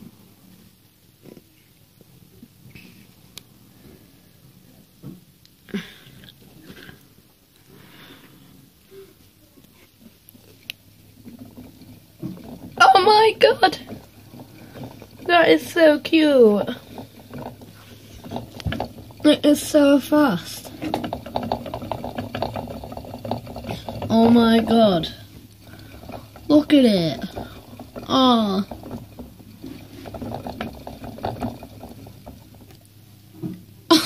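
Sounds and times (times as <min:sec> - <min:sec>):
hamster scurrying clicks and knocks: 0:10.6 - 0:33.6.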